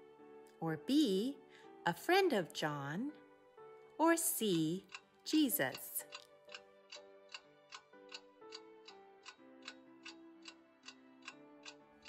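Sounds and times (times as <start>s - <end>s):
soft background music: 0.0s - 12.0s
ticking clock: 4.4s - 12.0s.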